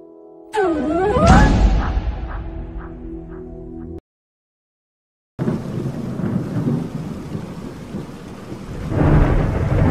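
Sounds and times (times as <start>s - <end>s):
rain: 5.4s - 9.9s
rumbling thunder: 5.4s - 9.9s.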